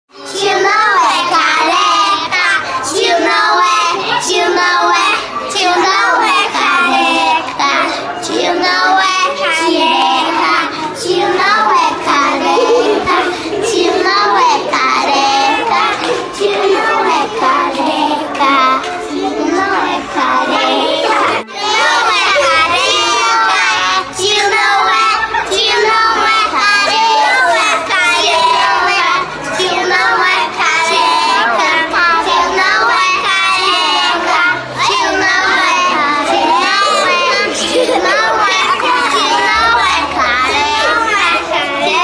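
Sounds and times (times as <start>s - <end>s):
children singing together: 0.1s - 42.0s.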